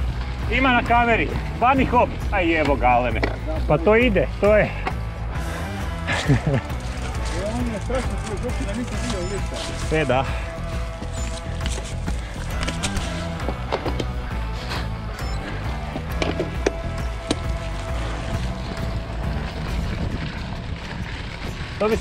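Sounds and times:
bike rolling on dirt trail: 0:00.0 - 0:22.0
bike clicks and rattles: 0:04.5 - 0:14.9, 0:15.9 - 0:22.0
wind rumbling on microphone: 0:16.6 - 0:22.0.

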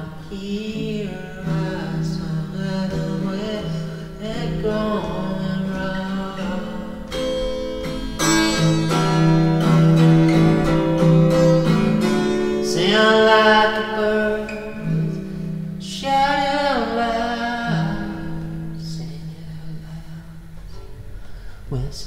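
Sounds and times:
background vocals: 0:00.0 - 0:07.1, 0:12.6 - 0:20.5
guitar strumming chords: 0:00.0 - 0:21.6.

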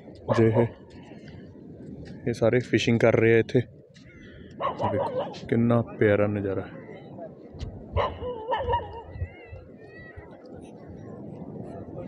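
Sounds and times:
dog barking: 0:04.6 - 0:05.4, 0:08.0 - 0:09.1.

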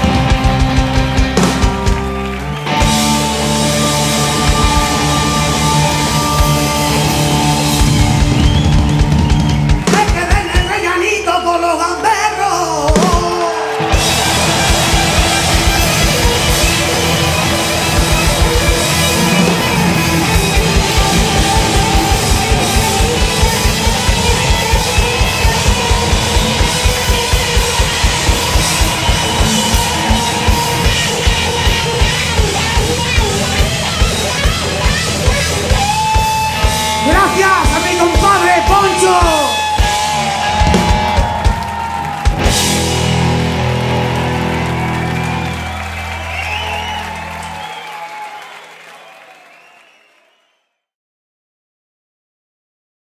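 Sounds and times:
rock band chord ringing out: 0:00.0 - 0:10.0, 0:13.7 - 0:47.7
drum kit driving beat: 0:00.0 - 0:10.9, 0:12.9 - 0:47.6
electric guitars: 0:00.0 - 0:48.5
audience applause and cheering: 0:00.0 - 0:50.8.

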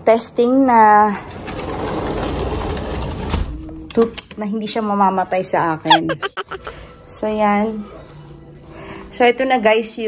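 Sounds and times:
sliding glass door rolling: 0:01.0 - 0:03.5.

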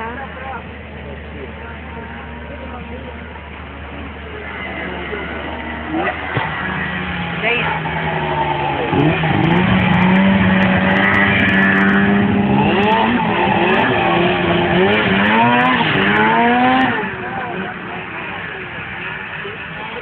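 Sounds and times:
snowmobile engine revving: 0:03.8 - 0:20.0.

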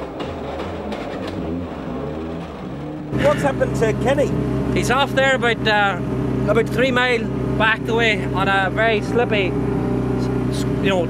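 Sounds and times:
rally car engine running hard: 0:00.0 - 0:11.0.

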